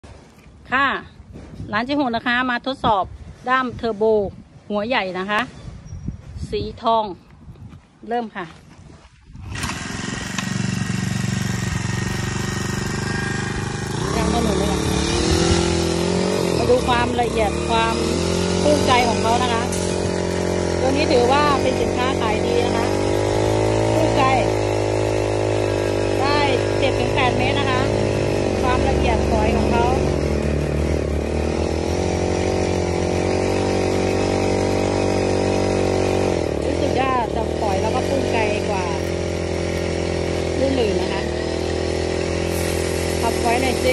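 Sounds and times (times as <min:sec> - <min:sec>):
woman speaking: 0:00.7 - 0:05.6, 0:06.4 - 0:07.2, 0:08.0 - 0:08.6, 0:14.0 - 0:15.4, 0:16.4 - 0:19.8, 0:20.8 - 0:23.0, 0:23.9 - 0:24.6, 0:26.2 - 0:30.1, 0:36.6 - 0:39.1, 0:40.5 - 0:41.4, 0:43.2 - 0:43.9
small two-stroke engine running: 0:09.3 - 0:43.9
water jet spraying: 0:42.3 - 0:43.9.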